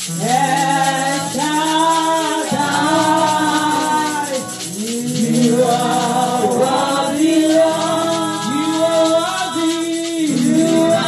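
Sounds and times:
woman singing gospel: 0.0 - 11.0.

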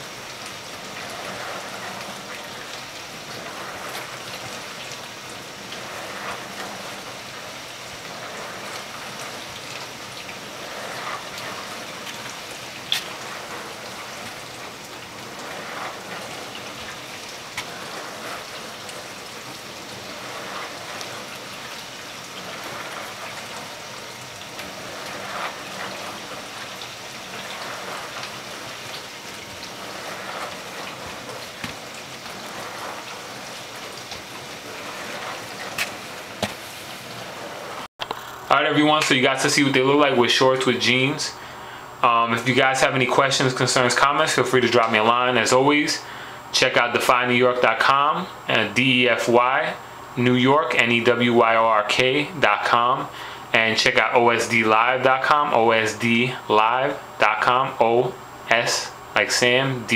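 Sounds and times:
steady hiss: 0.0 - 59.9
sneaker footsteps on tile floor: 35.7 - 37.2.

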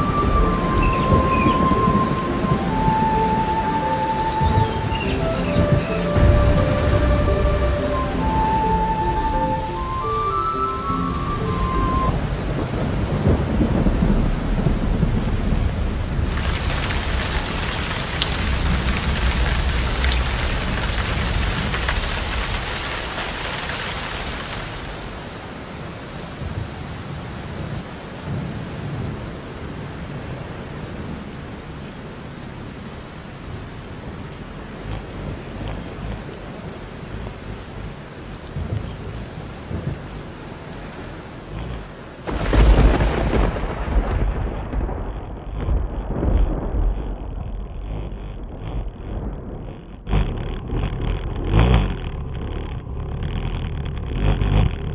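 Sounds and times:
loud hissing rush: 0.0 - 25.2
off-road vehicle rumbling: 0.0 - 25.3, 28.4 - 54.9.

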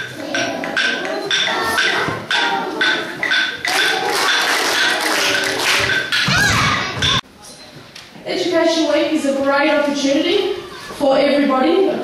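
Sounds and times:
music or singing: 0.0 - 7.0.

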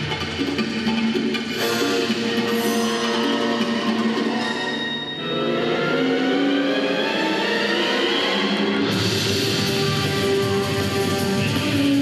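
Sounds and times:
sustained instrumental music: 0.4 - 12.0.

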